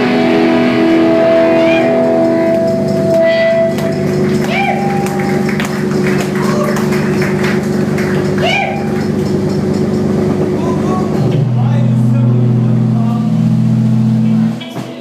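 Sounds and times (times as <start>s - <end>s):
amplifier hum: 0.0s - 14.6s
rock band playing: 0.0s - 15.0s
voices: 1.5s - 15.0s.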